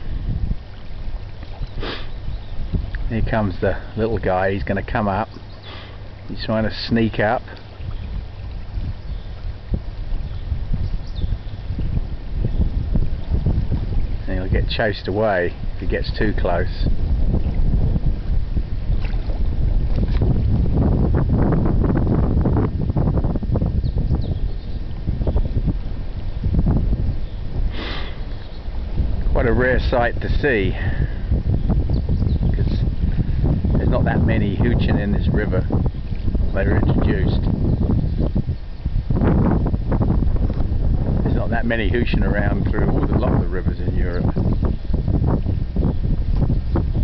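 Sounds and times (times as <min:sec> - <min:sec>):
flowing river water: 0:00.0 - 0:47.0
wind buffeting microphone: 0:00.0 - 0:47.0.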